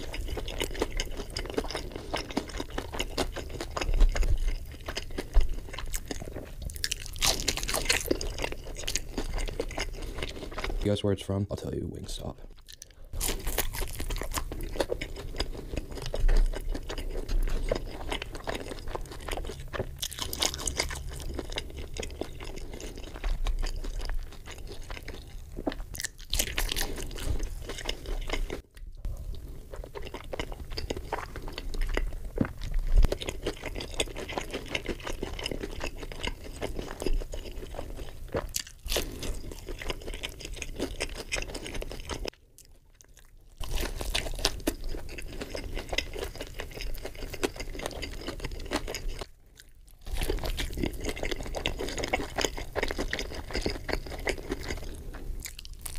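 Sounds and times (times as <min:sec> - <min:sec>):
crunchy bites into fried chicken: 0:00.0 - 0:09.9, 0:22.4 - 0:28.4, 0:43.0 - 0:54.8, 0:55.4 - 0:55.9
wet chewing: 0:00.0 - 0:10.9, 0:12.5 - 0:55.9.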